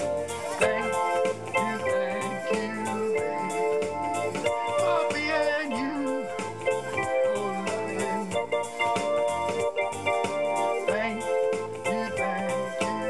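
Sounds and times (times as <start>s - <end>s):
electronic keyboard organ chords: 0.0s - 13.0s.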